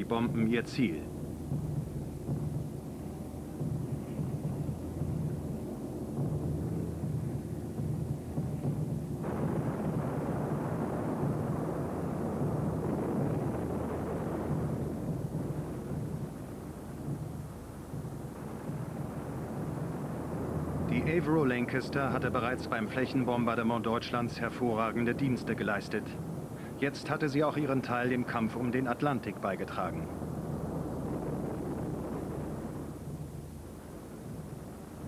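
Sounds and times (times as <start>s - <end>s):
bomb explosions rumbling: 0.0s - 35.0s
steady low drone: 0.0s - 35.0s.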